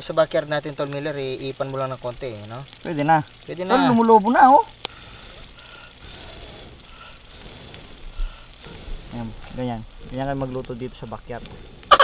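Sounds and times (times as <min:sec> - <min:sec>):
pork skin sizzling in hot oil: 0:00.0 - 0:12.0
small crackles: 0:00.0 - 0:12.0.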